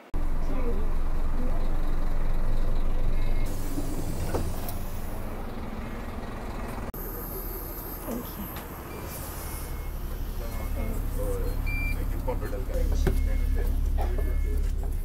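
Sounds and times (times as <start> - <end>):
bus engine rumbling: 0.0 - 15.0.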